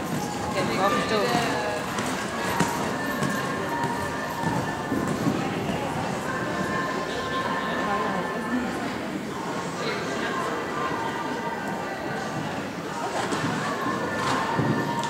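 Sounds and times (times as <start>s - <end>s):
horses' hoofbeats: 0.0s - 6.7s, 13.4s - 15.0s
people talking: 0.0s - 15.0s.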